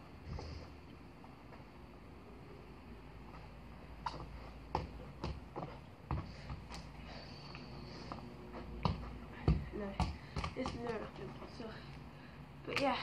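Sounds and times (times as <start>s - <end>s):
crutches and feet on artificial grass: 0.0s - 13.0s.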